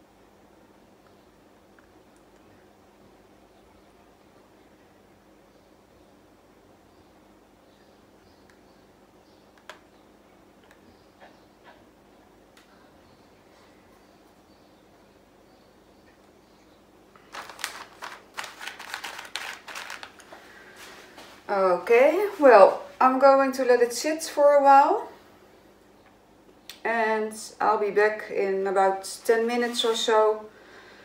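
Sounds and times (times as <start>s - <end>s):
crinkling and rustling of material: 17.2s - 21.5s.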